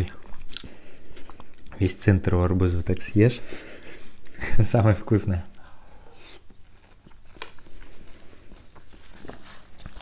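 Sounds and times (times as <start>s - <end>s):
watermelon bitten and chewed: 0.0s - 1.8s, 9.6s - 10.0s.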